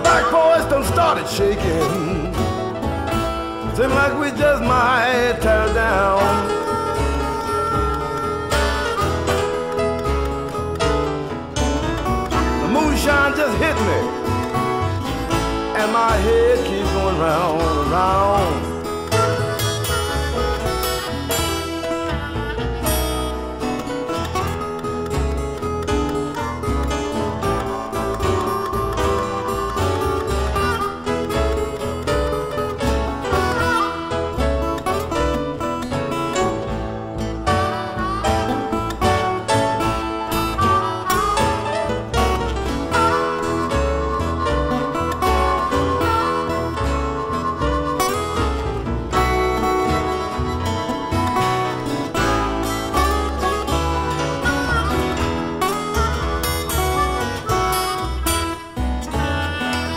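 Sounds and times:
electric blues band playing: 0.0 - 59.9
lead guitar bending notes: 0.0 - 59.9.

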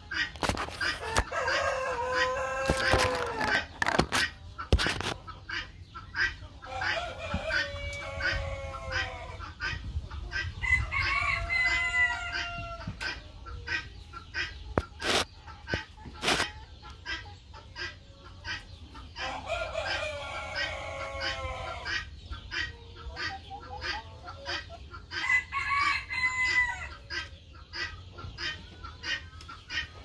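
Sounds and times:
chickens clucking: 0.0 - 30.0.

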